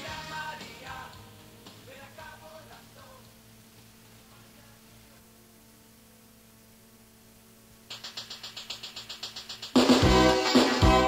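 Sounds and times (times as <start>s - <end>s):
cassette tape hum and hiss: 0.0s - 11.0s
fast rattling percussion beat: 7.9s - 11.0s.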